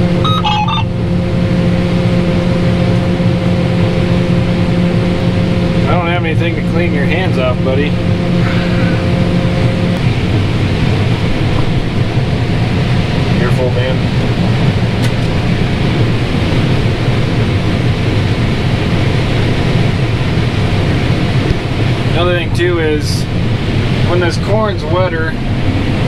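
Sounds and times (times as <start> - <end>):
combine harvester machinery drone: 0.0 - 26.0.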